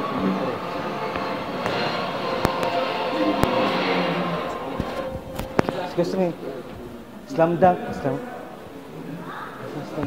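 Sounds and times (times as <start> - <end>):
background music: 0.0 - 9.2
din of voices: 0.0 - 10.0.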